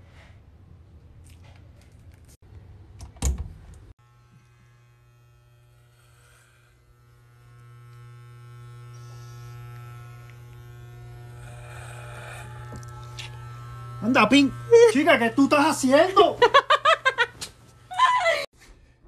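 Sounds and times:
electric hair clippers buzzing: 4.0 - 18.5.

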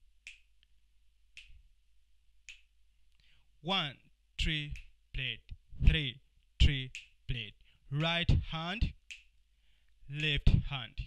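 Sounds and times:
finger snaps: 0.3 - 0.7, 1.4 - 1.6, 2.5 - 3.3, 4.7 - 5.0, 6.8 - 7.2, 9.1 - 9.4.

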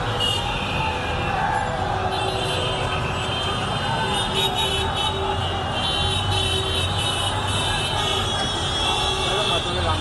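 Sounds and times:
crowd of marchers: 0.0 - 10.0
road traffic: 0.0 - 10.0.

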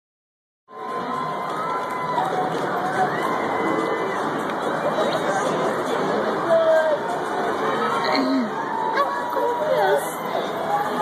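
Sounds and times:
crowd shouting and cheering: 0.7 - 11.0.

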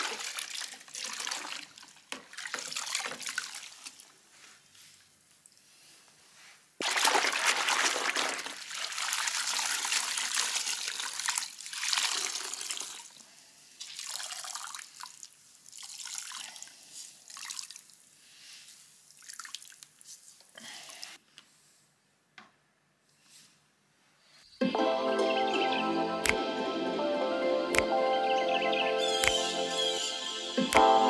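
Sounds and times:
water splashing and trickling: 0.0 - 4.2, 6.8 - 13.2, 13.8 - 18.0, 19.1 - 20.1.

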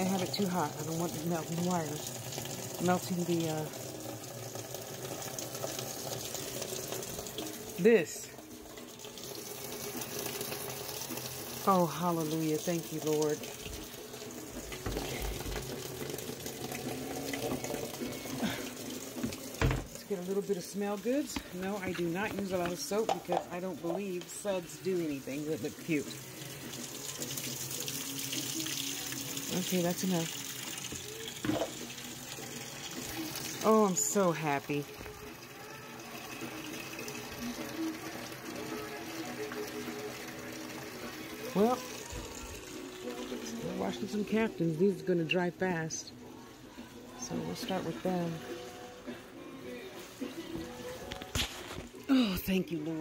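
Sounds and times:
faint background music: 0.0 - 53.0
water running into a tub: 0.0 - 53.0.

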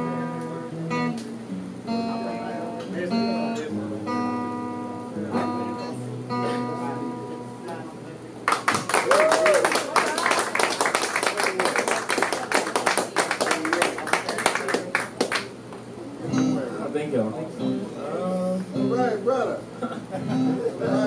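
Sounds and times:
audience applauding: 8.5 - 15.6.

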